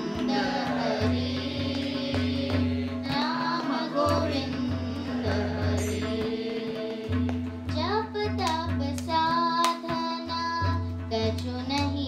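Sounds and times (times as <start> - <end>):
person singing: 0.0 - 10.6
light percussion: 0.0 - 12.0.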